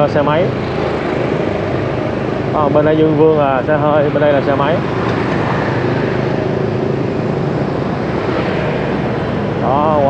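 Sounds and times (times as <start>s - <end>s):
motorbike engine hum: 0.0s - 10.0s
road noise: 0.0s - 10.0s.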